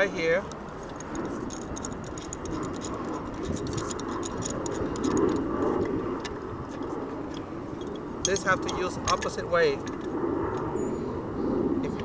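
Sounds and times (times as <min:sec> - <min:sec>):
pipe wrench clicking on pipe: 0:00.0 - 0:10.1.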